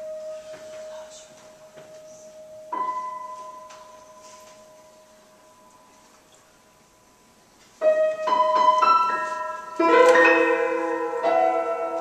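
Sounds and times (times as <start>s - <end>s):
grand piano playing: 0.0s - 6.9s, 7.8s - 12.0s.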